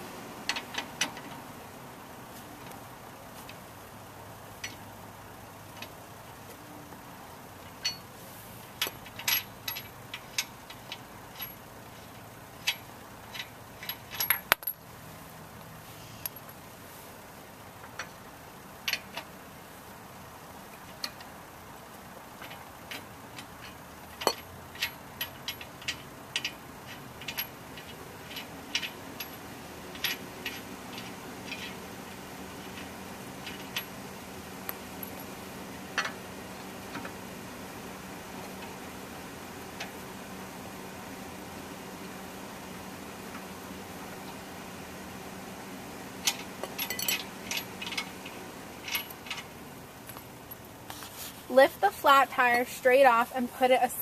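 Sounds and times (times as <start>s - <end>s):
wrench and wheel nuts clinking: 7.6s - 14.9s, 16.2s - 16.6s, 17.8s - 19.4s, 20.7s - 21.4s, 22.3s - 37.2s, 46.1s - 53.2s.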